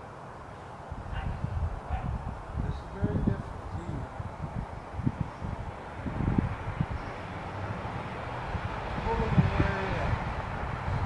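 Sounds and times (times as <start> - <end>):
wind buffeting microphone: 0.8 - 11.0.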